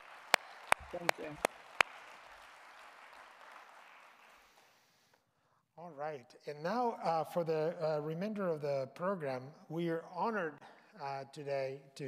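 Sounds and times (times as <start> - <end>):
audience applause: 0.0 - 4.9.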